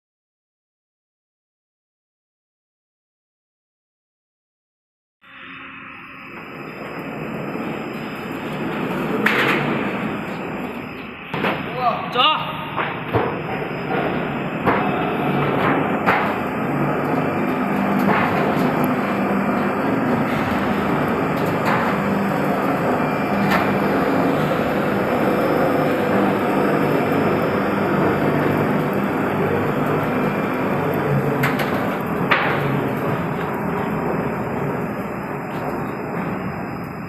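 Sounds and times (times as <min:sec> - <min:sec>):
roll-forming machine hum: 0:05.8 - 0:37.0.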